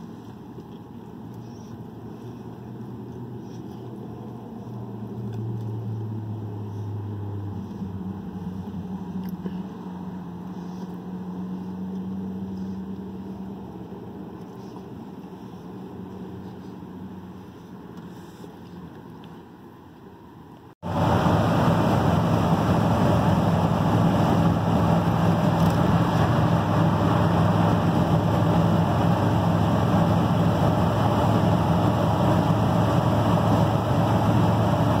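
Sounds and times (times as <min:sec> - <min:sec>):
engine and road noise: 0:00.0 - 0:35.0
low vehicle hum: 0:00.0 - 0:35.0.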